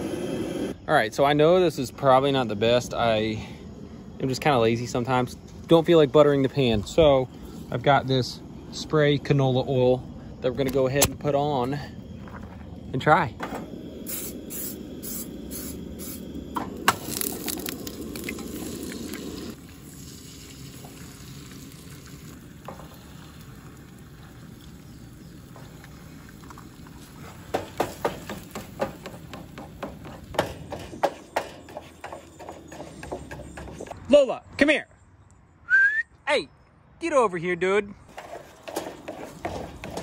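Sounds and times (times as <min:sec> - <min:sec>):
aerosol spray hissing: 0:00.0 - 0:00.8, 0:13.7 - 0:16.8.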